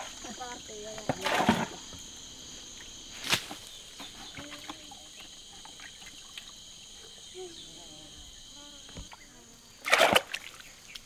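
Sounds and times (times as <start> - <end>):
shrill insect chorus: 0.0 - 11.0.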